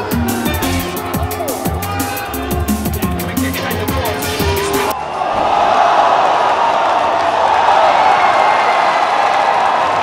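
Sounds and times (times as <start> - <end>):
crowd cheering and shouting: 0.0 - 10.0.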